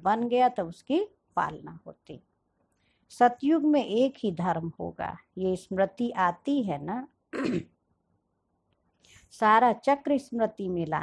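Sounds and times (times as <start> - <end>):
woman clearing her throat: 7.3 - 7.8.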